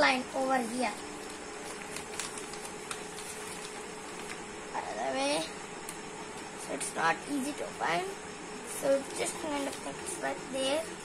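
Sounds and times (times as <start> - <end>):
faint steady hum: 0.0 - 11.0
paper rustling and crackling: 0.8 - 4.5, 9.0 - 10.2.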